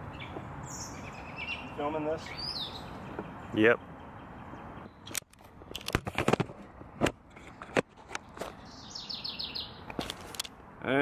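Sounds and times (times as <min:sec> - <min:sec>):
bird trilling: 0:00.1 - 0:05.1, 0:08.6 - 0:09.9
sharp clicks and knocks: 0:05.1 - 0:08.6.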